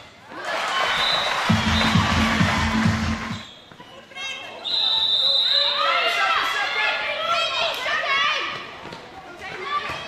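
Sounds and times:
spectators cheering loudly: 0.4s - 3.4s
drum beating steady rhythm: 1.5s - 3.4s.

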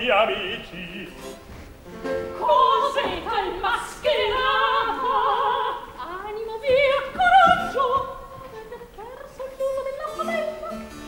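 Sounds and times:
operatic singing: 0.0s - 1.4s, 2.4s - 10.9s.

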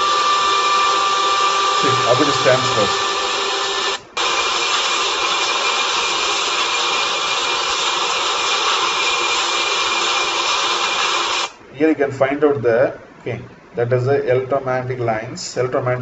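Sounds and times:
faint high whine: 0.0s - 16.0s
whirring machine noise: 0.0s - 16.0s
man talking: 1.8s - 3.0s, 11.7s - 16.0s.

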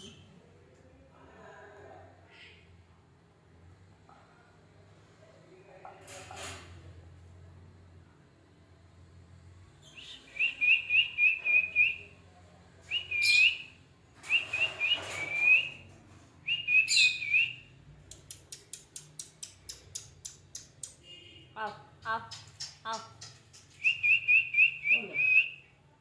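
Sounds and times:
sharp clicks: 18.0s - 21.0s.

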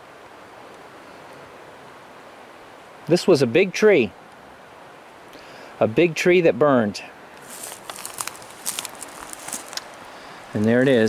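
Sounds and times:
footsteps over dry twigs: 7.4s - 11.0s.

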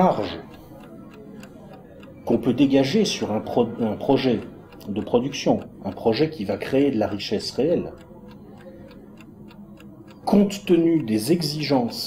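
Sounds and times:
chess clock ticking: 0.0s - 12.0s.

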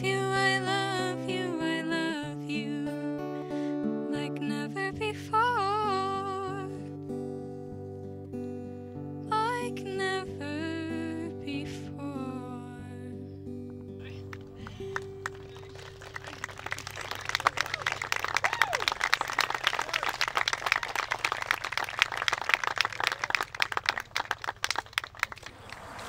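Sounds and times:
acoustic guitar notes ringing: 0.0s - 15.6s
audience applause: 14.4s - 26.0s.

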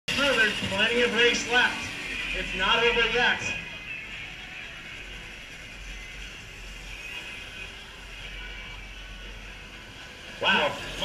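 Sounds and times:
electric karts racing: 0.1s - 11.0s.

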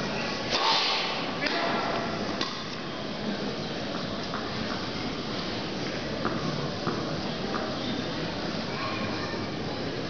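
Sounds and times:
tennis ball struck with racket: 0.5s - 1.8s.

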